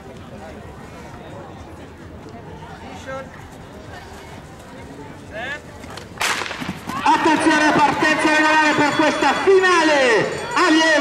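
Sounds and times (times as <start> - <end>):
loud voices: 5.2 - 11.0
starting pistol crack: 6.2 - 6.8.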